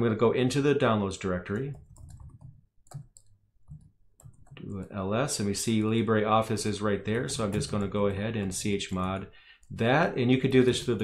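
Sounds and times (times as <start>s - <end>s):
laptop keyboard typing: 1.5s - 5.0s.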